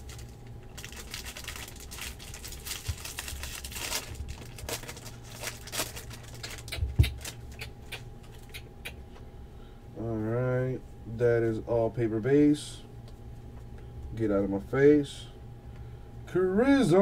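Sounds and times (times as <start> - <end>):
foil wrapper crinkling: 0.0 - 7.6.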